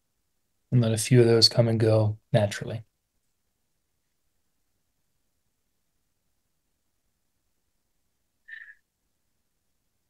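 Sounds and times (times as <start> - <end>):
short high chirp: 8.5 - 8.8.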